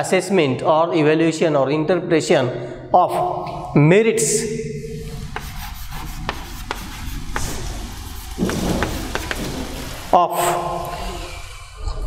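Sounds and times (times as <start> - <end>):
chalk writing on blackboard: 4.9 - 10.1.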